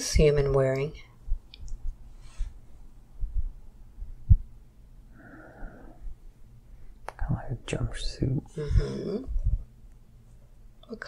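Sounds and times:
low muffled thumps: 3.1 - 4.6.

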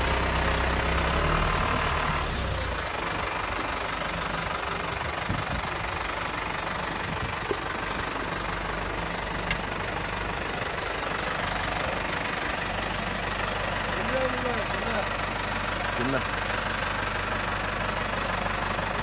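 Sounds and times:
engine running steadily: 0.0 - 19.0.

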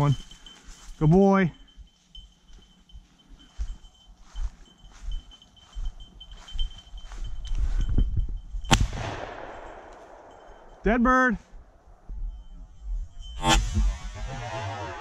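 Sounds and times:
shotgun shot: 8.7 - 10.6.

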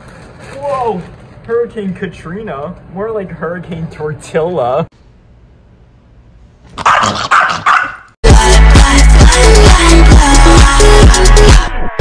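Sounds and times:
small dog barking: 6.8 - 8.1
electronic dance music: 8.2 - 12.0.

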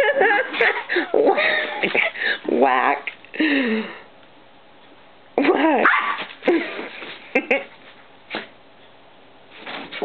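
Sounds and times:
small dog barking: 5.8 - 6.3.

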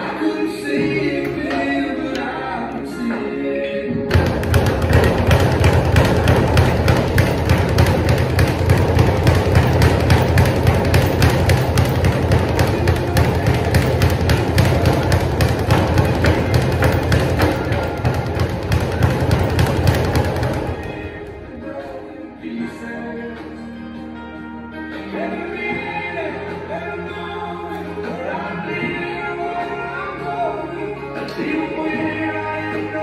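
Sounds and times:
speed bag being punched: 4.1 - 21.1.

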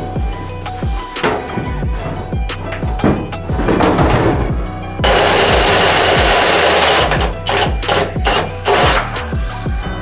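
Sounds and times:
background music with steady beat: 0.0 - 10.0
drill cutting through sheet steel: 5.0 - 9.2.

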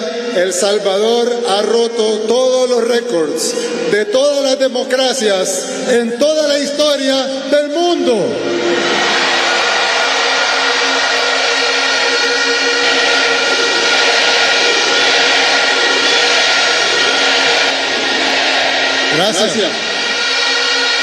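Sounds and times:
large crowd cheering: 0.0 - 21.0.

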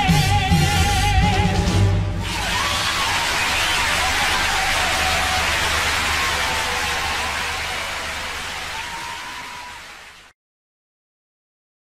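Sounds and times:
audience applauding: 2.2 - 10.4.

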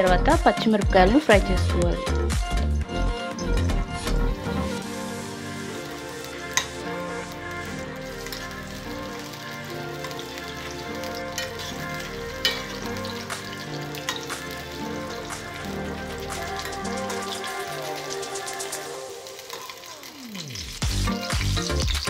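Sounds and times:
chillies sizzling in hot oil: 0.0 - 22.0
steel spoon clicking against pan: 12.4 - 13.1.

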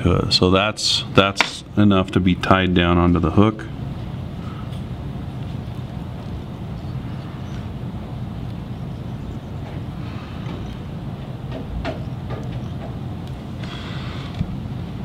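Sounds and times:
low room rumble: 0.0 - 15.0.

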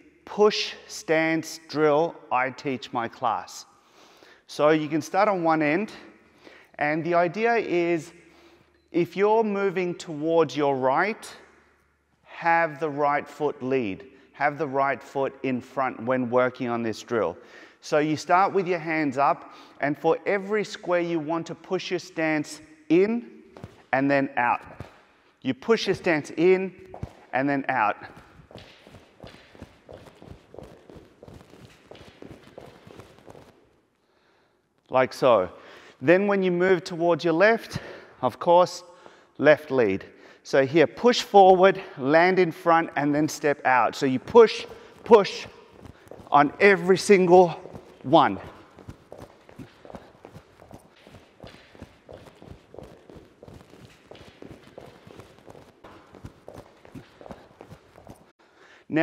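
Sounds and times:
quick footsteps on a gym mat: 23.4 - 33.8, 43.3 - 58.4.

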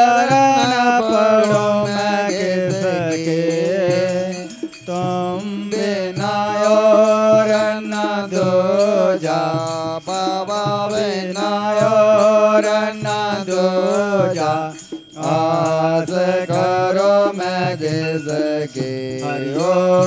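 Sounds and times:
devotional singing: 0.0 - 20.0.

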